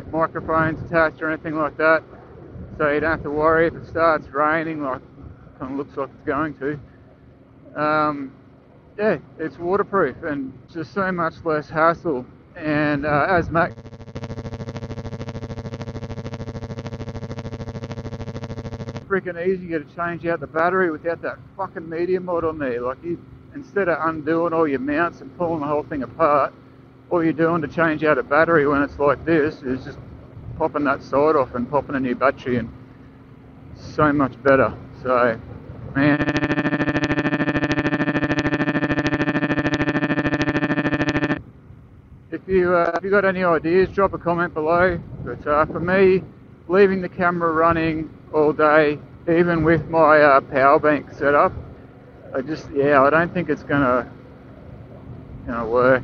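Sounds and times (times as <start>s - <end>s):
rapidly pulsing electronic buzz: 12.6s - 41.8s
robotic buzzing audio glitch: 13.4s - 19.1s, 36.0s - 41.4s.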